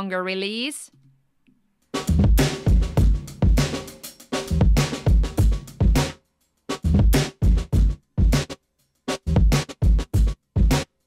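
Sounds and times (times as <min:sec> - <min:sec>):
gated drum loop: 0:01.8 - 0:11.0.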